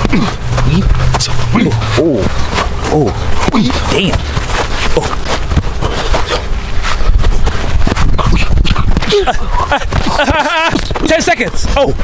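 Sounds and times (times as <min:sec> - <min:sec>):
hard breathing: 0:00.0 - 0:10.2
low microphone rumble: 0:00.0 - 0:10.9
glove hits and foot scuffs: 0:00.0 - 0:12.0.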